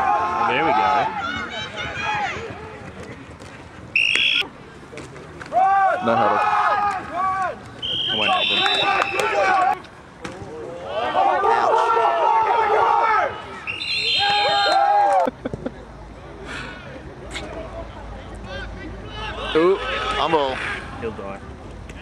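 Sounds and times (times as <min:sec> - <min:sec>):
players and spectators shouting: 0:00.0 - 0:02.8, 0:05.5 - 0:15.3, 0:18.3 - 0:21.1
referee's whistle blasts: 0:04.0 - 0:04.4, 0:07.8 - 0:09.5, 0:13.6 - 0:14.9.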